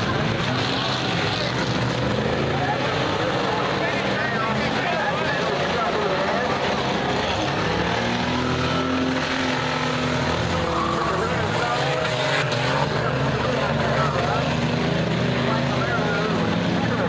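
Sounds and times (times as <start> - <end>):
race car engines passing: 0.0 - 17.0.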